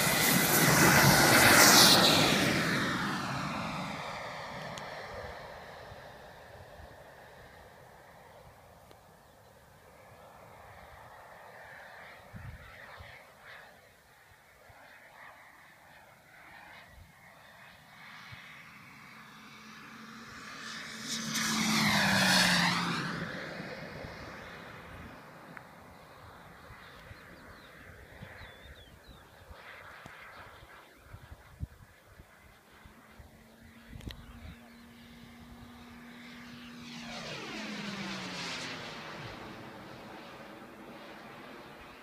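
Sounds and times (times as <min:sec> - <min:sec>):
model jet whine passing: 0:00.0 - 0:42.0.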